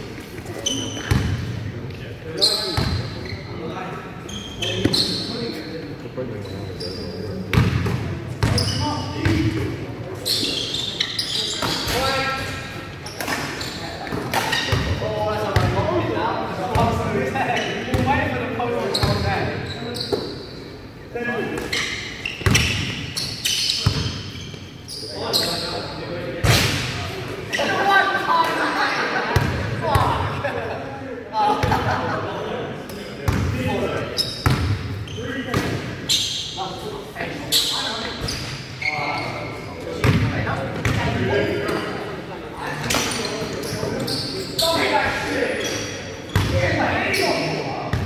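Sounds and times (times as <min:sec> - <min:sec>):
players' voices: 0:00.0 - 0:48.0.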